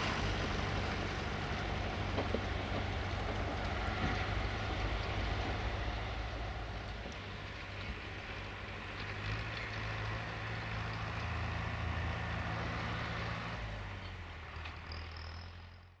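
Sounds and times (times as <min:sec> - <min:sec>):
low engine hum: 0:00.0 - 0:16.0.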